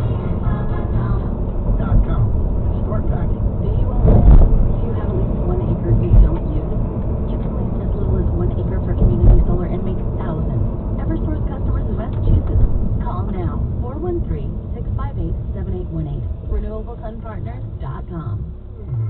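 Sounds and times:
road and engine rumble in car: 0.0 - 19.0.

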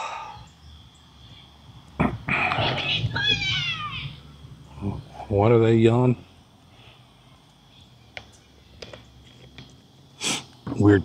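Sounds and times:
children yelling: 2.3 - 4.4.

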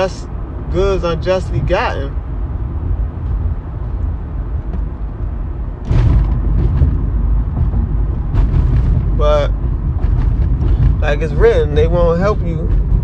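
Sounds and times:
low rumbling background noise: 0.0 - 13.0.

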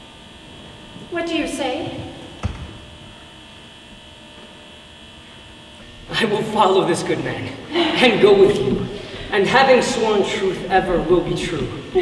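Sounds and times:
electrical mains hum: 0.0 - 12.0
soft thump: 2.4 - 2.9.

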